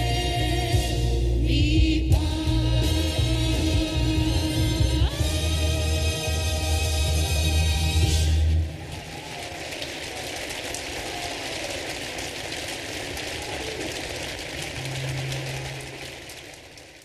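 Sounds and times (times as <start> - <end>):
audience applauding: 8.5 - 17.0.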